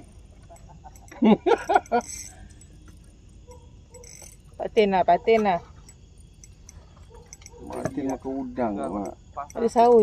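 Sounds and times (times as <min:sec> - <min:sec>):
person laughing loudly: 0:00.5 - 0:02.0.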